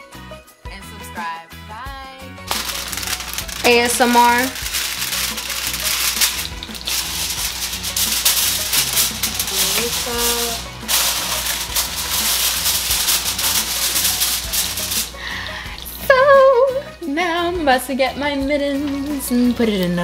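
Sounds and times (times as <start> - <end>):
soft background music: 0.0 - 20.0
aluminium foil crinkling: 2.5 - 16.1.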